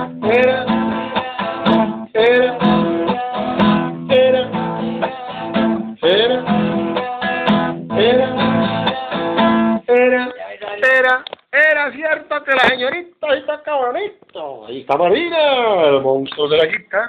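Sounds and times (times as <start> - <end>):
acoustic guitar strumming: 0.0 - 11.2.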